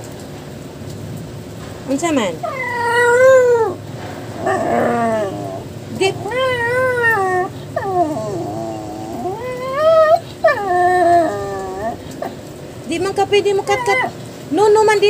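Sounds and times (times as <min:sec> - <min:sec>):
small dog howling moans: 0:02.4 - 0:12.4, 0:13.6 - 0:14.1.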